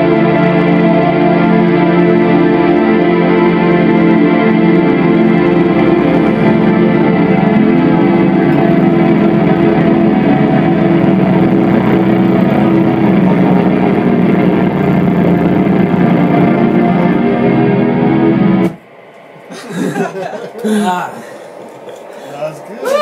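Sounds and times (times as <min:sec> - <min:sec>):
distorted electric guitar: 0:00.0 - 0:19.4
keyboard: 0:00.0 - 0:23.0.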